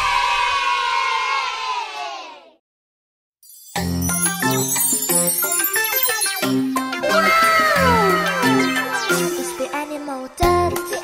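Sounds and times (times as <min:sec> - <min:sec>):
children cheering: 0:07.1 - 0:09.2.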